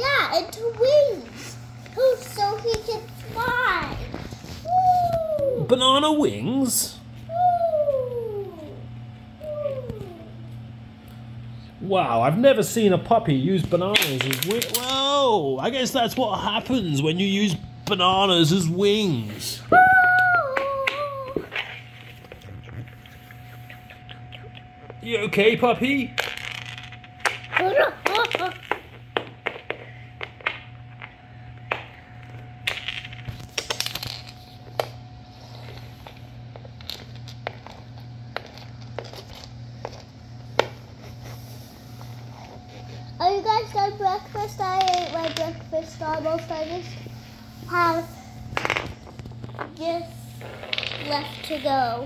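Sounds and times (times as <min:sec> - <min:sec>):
faint steady hum: 0:00.0 - 0:52.0
plastic toys clicking on wooden floor: 0:14.0 - 0:15.0, 0:44.7 - 0:45.6.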